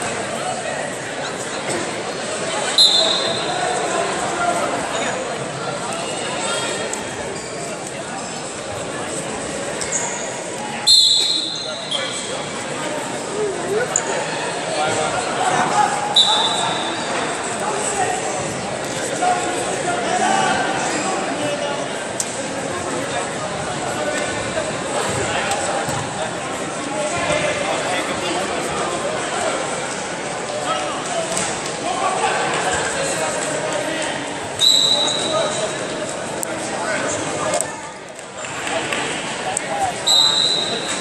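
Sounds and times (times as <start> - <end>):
murmur of voices: 0.0 - 41.0.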